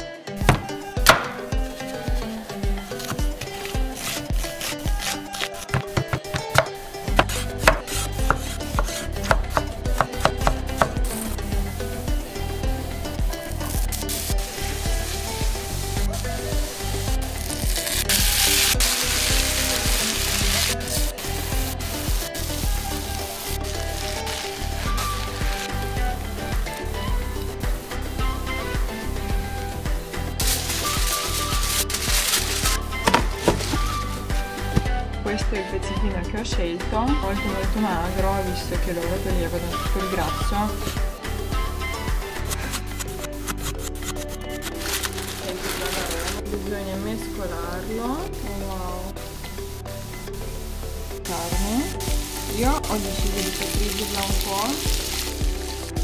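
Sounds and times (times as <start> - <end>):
background music with bass beat: 0.0 - 56.0
onion sizzling in frying pan: 0.4 - 34.8, 37.4 - 56.0
knife chopping on wooden board: 0.5 - 1.5, 4.0 - 11.0, 33.0 - 33.8.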